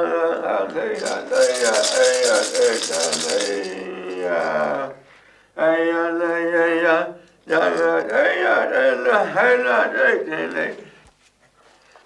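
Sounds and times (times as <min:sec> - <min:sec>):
man chanting: 0:00.0 - 0:05.0, 0:05.6 - 0:10.9
gourd rattle shaking: 0:00.7 - 0:04.8.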